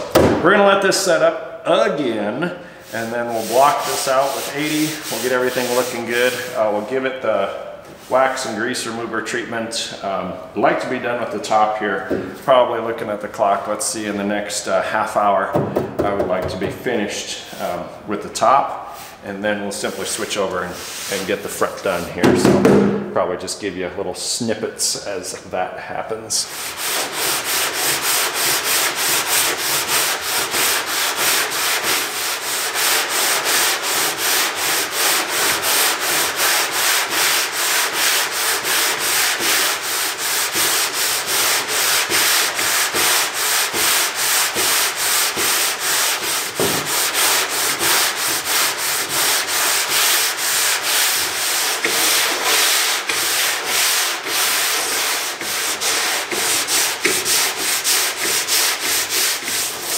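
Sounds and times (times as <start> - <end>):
sandpaper block sanding: 2.8 - 6.6, 19.8 - 22.2, 26.4 - 59.9.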